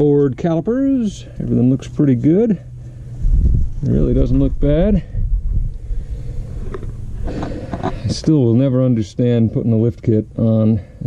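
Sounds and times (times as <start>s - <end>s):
low uneven rumble: 0.0s - 11.0s.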